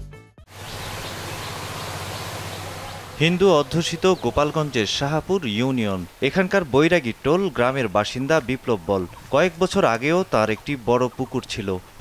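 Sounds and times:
low hum: 0:00.5 - 0:05.0
outdoor background hiss: 0:00.5 - 0:12.0.

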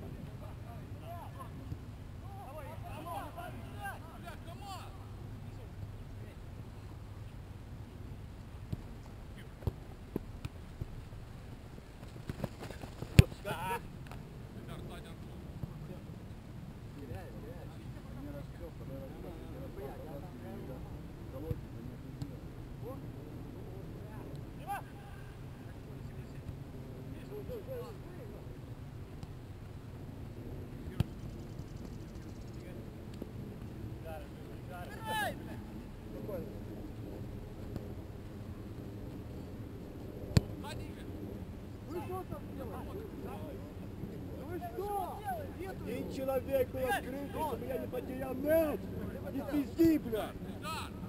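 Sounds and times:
soccer ball kick thuds: 0:08.6 - 0:11.0, 0:12.0 - 0:14.2, 0:30.9 - 0:31.9, 0:40.3 - 0:40.6.

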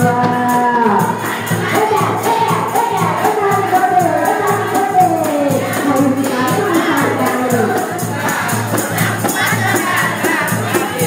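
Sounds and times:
group singing: 0:00.0 - 0:11.0
hand percussion beat: 0:00.0 - 0:11.0.

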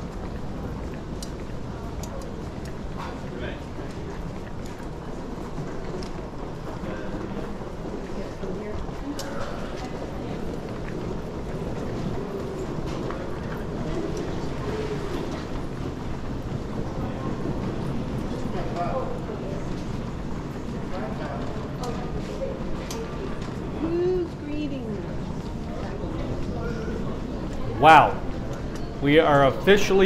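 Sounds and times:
faint voices: 0:00.0 - 0:30.0
trolley wheels rumbling on tiles: 0:00.0 - 0:30.0.

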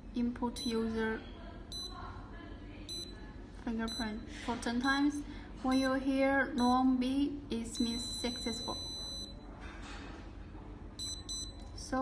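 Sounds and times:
padlock electronic beep: 0:07.8 - 0:09.4, 0:11.0 - 0:11.7.

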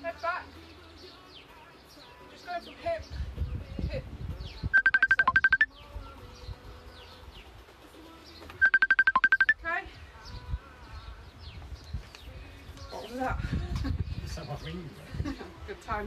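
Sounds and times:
phone ringtone beeping: 0:04.8 - 0:05.7, 0:08.6 - 0:09.6
birds chirping faintly: 0:08.2 - 0:13.2.

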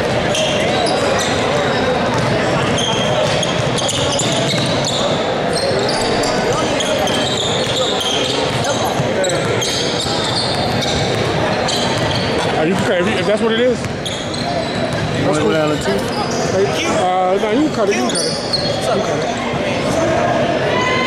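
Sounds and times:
voices in echoing hall: 0:00.0 - 0:21.0.

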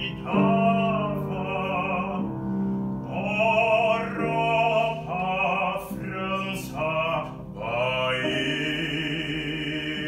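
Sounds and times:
grand piano accompaniment: 0:00.0 - 0:10.0
man singing classical song: 0:00.0 - 0:10.0.

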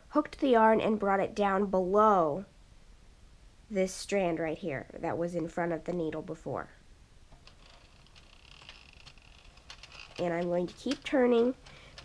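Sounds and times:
knitting machine clicking: 0:07.3 - 0:12.0.

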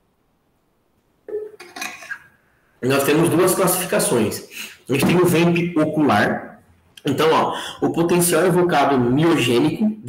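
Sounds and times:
bottle clinking and knocking: 0:01.3 - 0:02.2.

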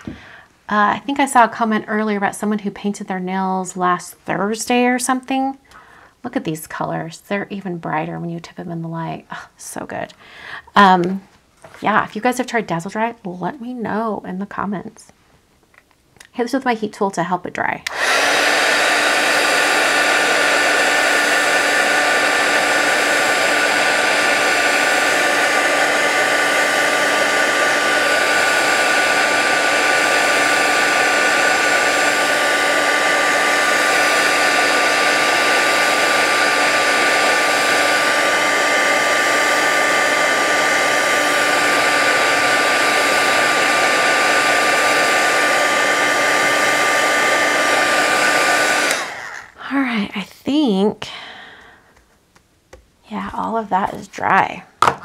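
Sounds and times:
heat tool fan rush with whine: 0:17.9 - 0:49.6.

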